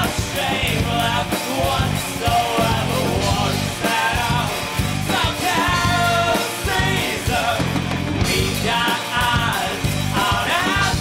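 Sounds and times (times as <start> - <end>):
drums: 0.0 - 11.0
man singing: 0.0 - 11.0
synthesizer: 0.0 - 11.0.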